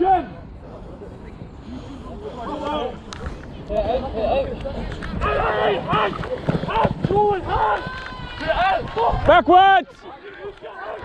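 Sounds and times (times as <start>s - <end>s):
wind rumble on microphone: 3.1s - 9.5s
running footsteps: 4.9s - 9.4s
players shouting: 5.2s - 11.0s.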